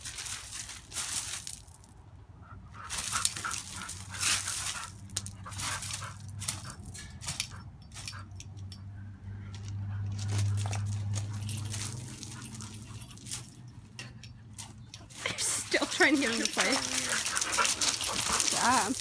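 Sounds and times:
paws scrabbling on gravel: 0.0 - 2.0, 2.8 - 8.2, 9.4 - 19.0
dogs playful vocal noises: 14.3 - 19.0.

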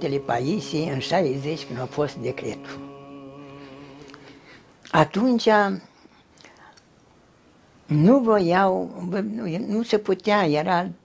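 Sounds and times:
old man speaking: 0.0 - 2.8
soft breath: 2.6 - 4.8.

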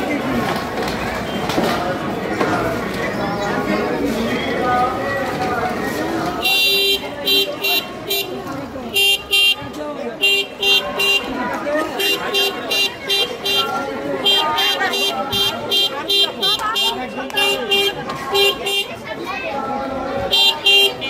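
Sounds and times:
people talking in a crowd: 0.0 - 21.0.

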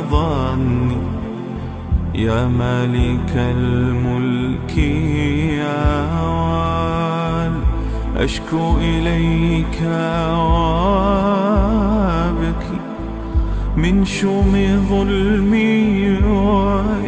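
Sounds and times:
low drone: 0.0 - 17.0
man singing ornamented lines: 0.0 - 17.0.

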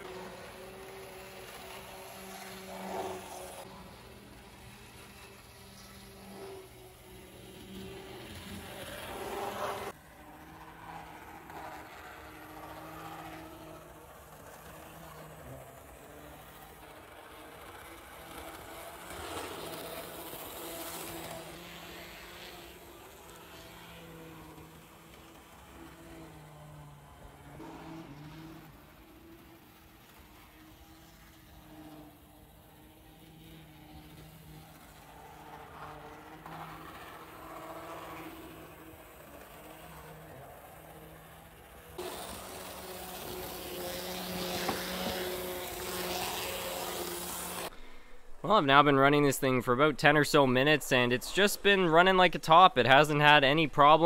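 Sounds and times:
model train wheels rattling on rails: 0.0 - 47.7
electric motor hum: 0.0 - 48.4.

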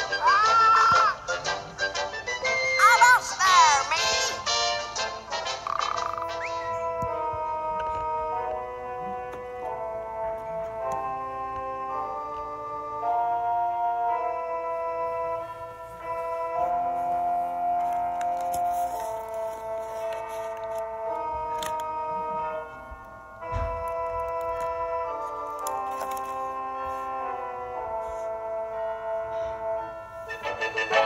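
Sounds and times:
slow organ-like chords: 5.0 - 18.4, 20.6 - 31.0
wavering swooping tones: 5.6 - 7.0.

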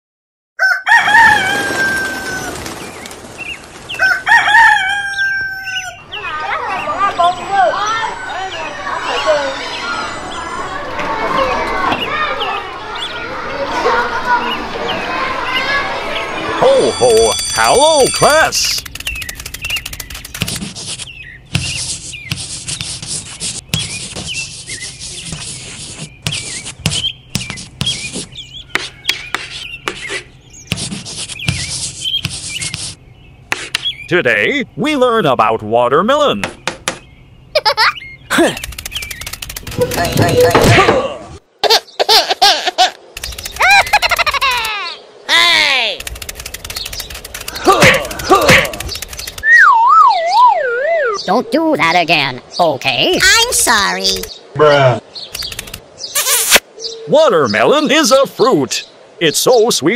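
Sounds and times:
rooster crowing: 0.6 - 2.6, 3.9 - 6.1
chalk tapping on board: 19.7 - 24.4, 25.0 - 33.9
chalk scraping on chalkboard: 20.4 - 33.8.

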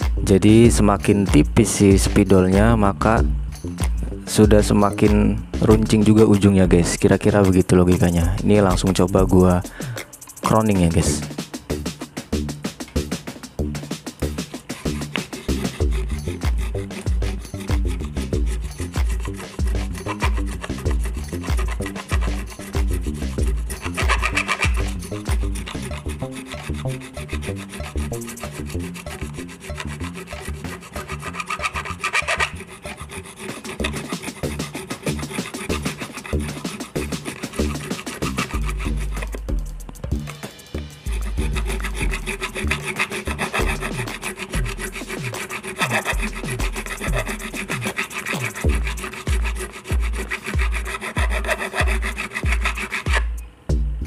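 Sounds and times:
background music with bass beat: 0.0 - 7.4, 8.1 - 31.1, 33.8 - 45.4, 46.1 - 47.8, 48.6 - 54.0
file rasping on metal fret: 0.0 - 53.4.

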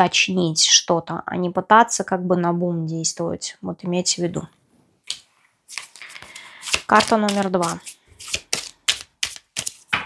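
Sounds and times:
cards snapping and clicking: 5.1 - 9.9.

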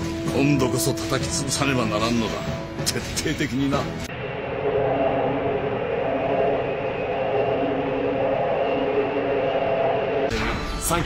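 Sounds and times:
thrusters rumbling drone: 4.0 - 10.8.

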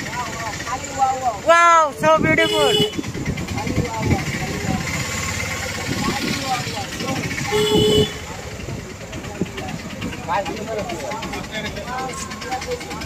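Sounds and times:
crowd chatter: 0.0 - 13.0
passing traffic: 0.0 - 13.0
car horn toot: 2.3 - 3.1, 7.5 - 8.3.

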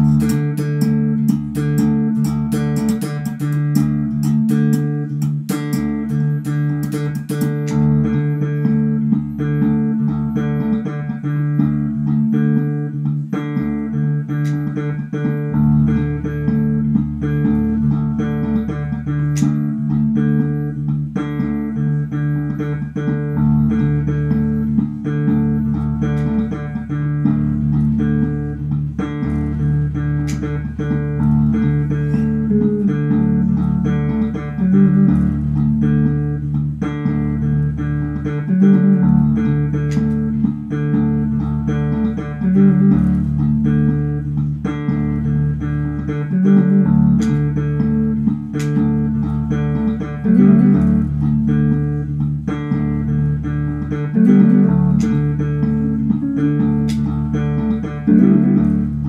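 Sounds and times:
looped electric bass guitar: 0.0 - 59.0.

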